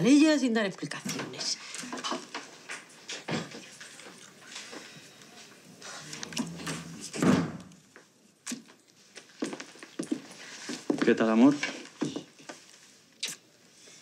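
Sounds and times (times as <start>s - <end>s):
door opening and closing: 6.2s - 7.7s.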